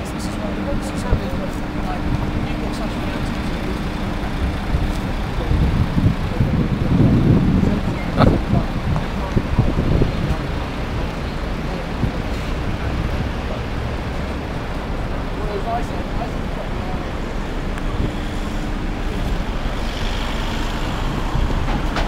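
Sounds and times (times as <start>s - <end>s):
traffic rumble of passing vehicles: 0.0s - 22.0s.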